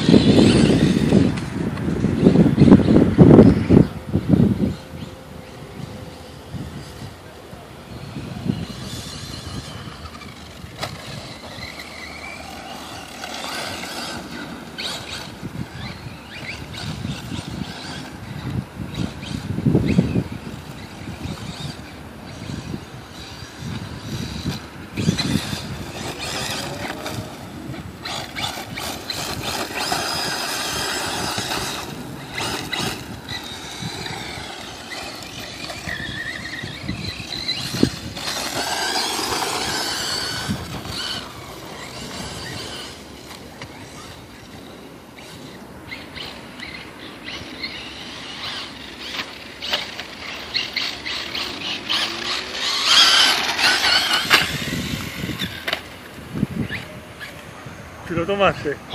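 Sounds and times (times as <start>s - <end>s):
electric motor whine: 0.0s - 57.4s
tyre noise on dirt: 7.9s - 46.6s, 47.2s - 57.5s.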